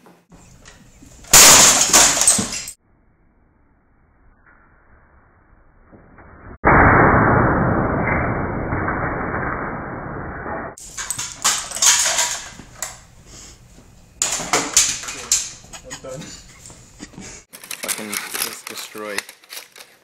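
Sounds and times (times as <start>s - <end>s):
muffled loud crash: 6.6s - 10.8s
plastic cracking and clattering: 14.2s - 15.5s, 17.5s - 20.0s.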